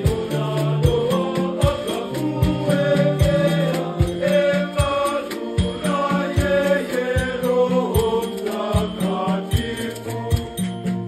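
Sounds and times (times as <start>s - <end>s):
low beat: 0.0s - 11.0s
men's choir singing a hymn: 0.0s - 11.0s.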